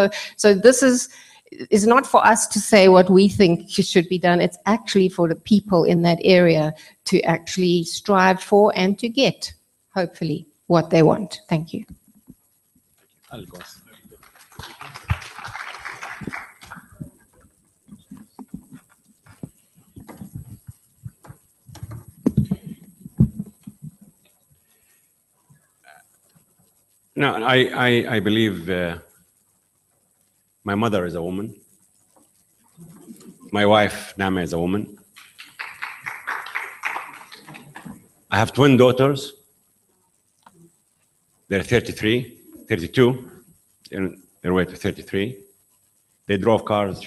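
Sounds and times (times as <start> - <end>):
rustling noise: 11.8 - 27.1
audience applause: 13.4 - 17.1, 35.2 - 38.0
footsteps on stage floor: 16.2 - 23.9.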